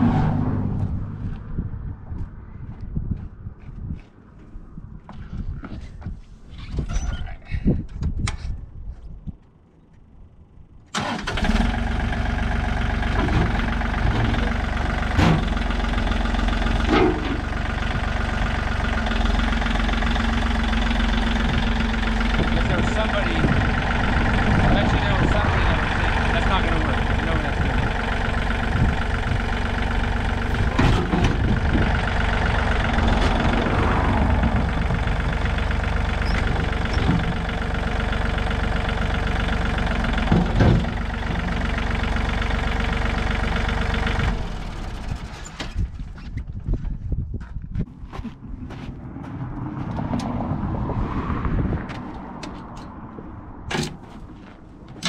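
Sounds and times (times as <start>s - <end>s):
tractor diesel engine running: 10.9s - 50.6s.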